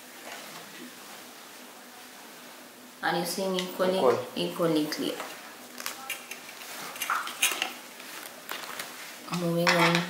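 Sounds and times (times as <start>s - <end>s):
book page turning: 8.0s - 9.0s.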